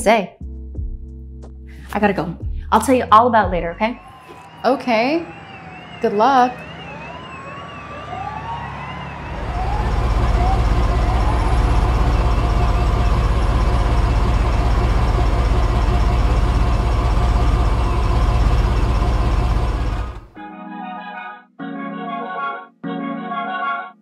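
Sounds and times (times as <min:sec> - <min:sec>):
police siren wailing: 0:03.7 - 0:20.4
car engine rumble: 0:09.2 - 0:20.4.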